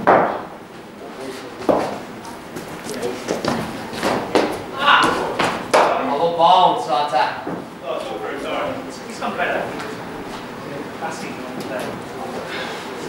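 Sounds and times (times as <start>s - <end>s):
cricket ball striking bat: 0.0s - 0.5s
faint voices: 1.0s - 13.0s.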